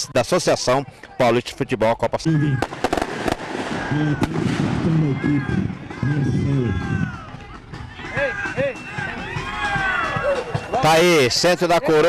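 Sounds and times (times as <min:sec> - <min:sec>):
people's voices: 0:00.0 - 0:02.9, 0:03.6 - 0:12.0
sharp firecracker-like crack: 0:02.6 - 0:05.0.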